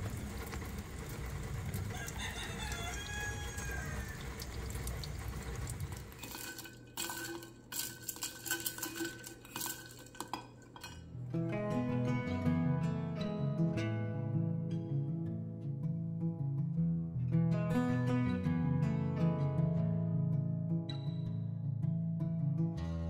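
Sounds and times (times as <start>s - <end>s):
rooster crowing: 1.8s - 4.7s
glass bowl and dishes clinking: 6.2s - 11.2s
acoustic guitar music: 10.7s - 23.0s.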